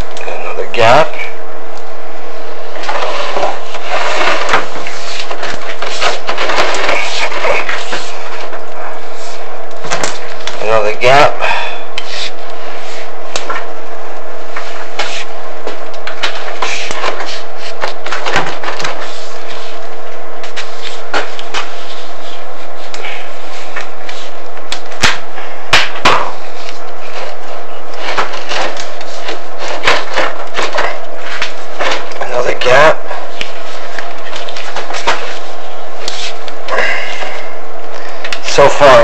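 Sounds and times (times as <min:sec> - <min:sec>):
steady hum: 0:00.0 - 0:39.0.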